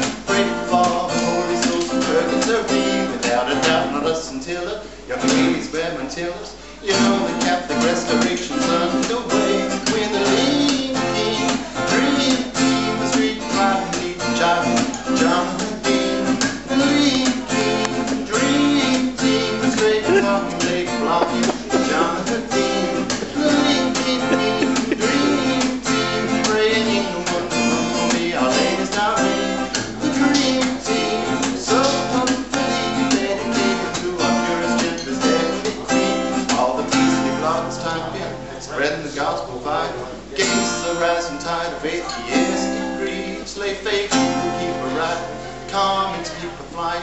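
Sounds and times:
acoustic guitar strumming: 0:00.0 - 0:47.0
man singing: 0:00.0 - 0:47.0.

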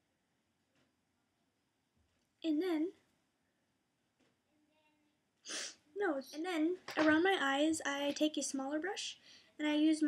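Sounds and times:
sharp intake of breath: 0:05.5 - 0:05.8.

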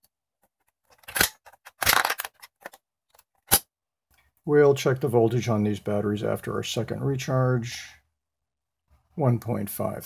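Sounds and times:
plastic clicks and rattles: 0:00.4 - 0:03.6.

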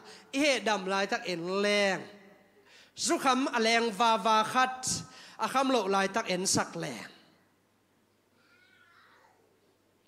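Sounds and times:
faint high-pitched wavering cry: 0:08.4 - 0:09.5.

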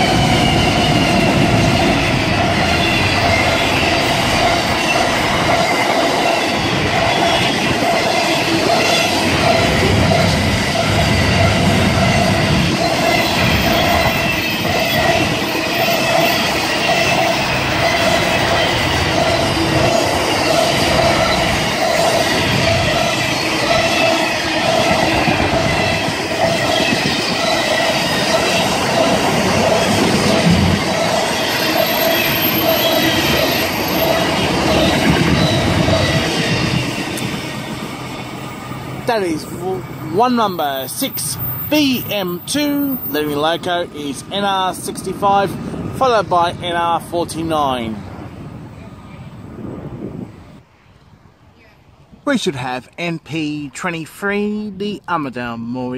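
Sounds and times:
high-pitched wheel squeal: 0:00.0 - 0:38.8
train wheel clatter: 0:00.0 - 0:38.8
diesel locomotives passing: 0:00.0 - 0:52.6.

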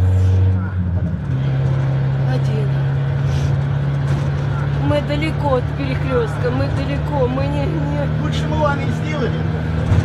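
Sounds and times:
van engine and road noise: 0:00.0 - 0:10.0.

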